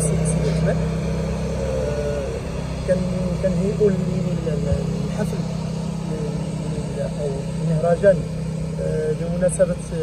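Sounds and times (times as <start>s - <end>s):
man speaking into microphone: 0.0s - 0.9s, 1.6s - 5.5s, 6.1s - 10.0s
low rumble: 0.0s - 10.0s.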